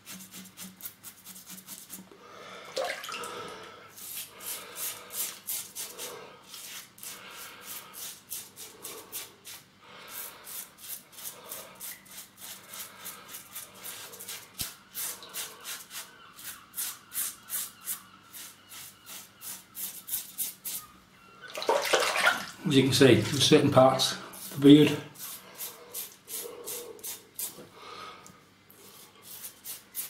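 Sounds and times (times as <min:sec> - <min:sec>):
razor scraping beard stubble: 0:00.0 - 0:02.0, 0:04.0 - 0:20.9, 0:24.4 - 0:27.6, 0:28.8 - 0:30.0.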